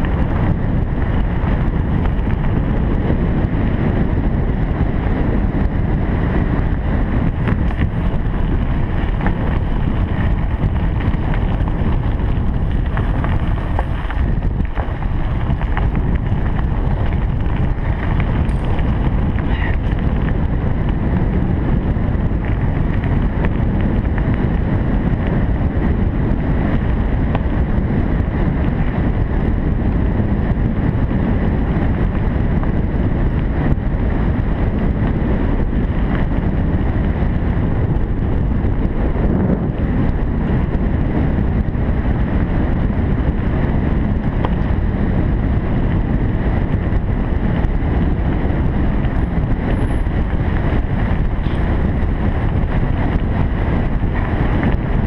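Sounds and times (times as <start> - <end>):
bicycle rumbling over gravel: 0.0 - 55.0
wind buffeting microphone: 0.0 - 55.0.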